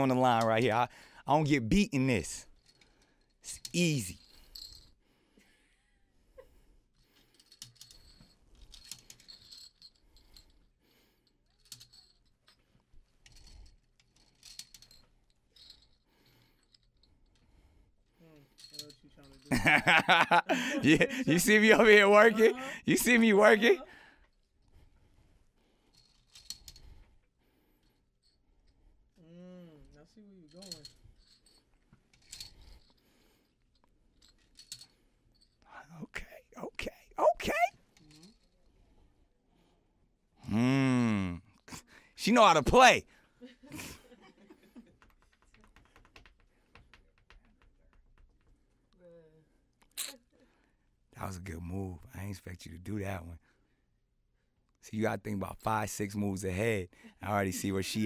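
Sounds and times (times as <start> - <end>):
plastic checkers clicking and rattling: 44.9 - 48.6.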